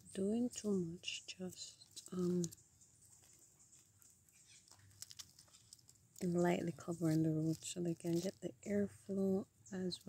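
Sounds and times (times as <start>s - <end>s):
light ticks and rustles: 0.0s - 8.6s.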